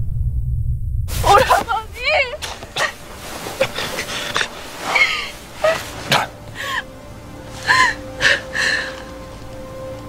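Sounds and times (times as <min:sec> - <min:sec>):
woman sobbing: 0:01.2 - 0:09.3
soft film music: 0:01.3 - 0:10.0.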